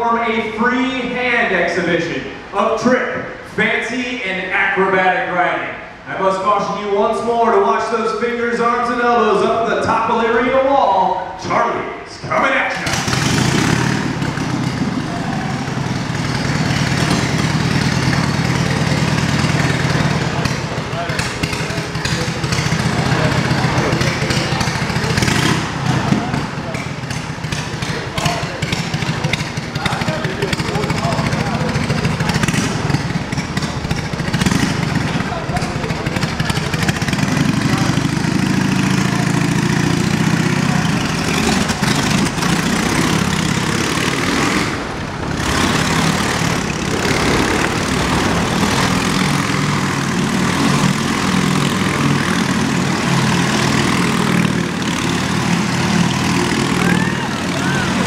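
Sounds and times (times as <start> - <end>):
motorcycle engine running: 12.7 - 58.0.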